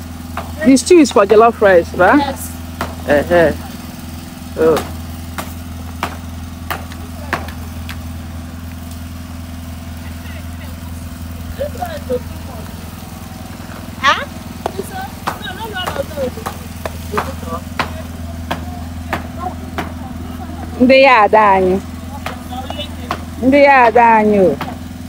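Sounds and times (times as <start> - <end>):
small engine humming: 0.0 - 25.0.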